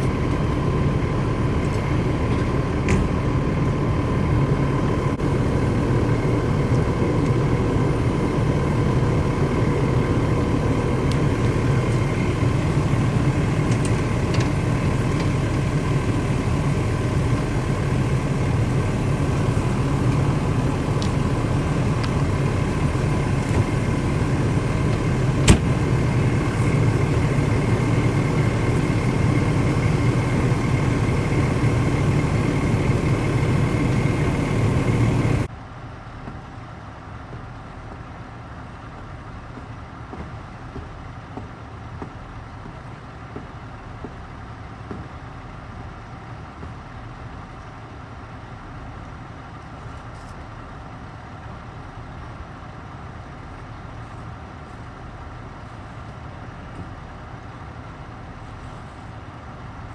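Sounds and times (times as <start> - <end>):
faint steady whine: 0.0 - 59.9
fire truck engine idling: 0.0 - 59.9.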